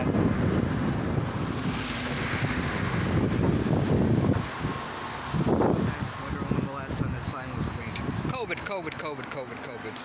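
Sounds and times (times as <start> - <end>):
rush of noise: 0.0 - 8.6
wind buffeting microphone: 0.0 - 9.4
street traffic noise: 0.0 - 10.0.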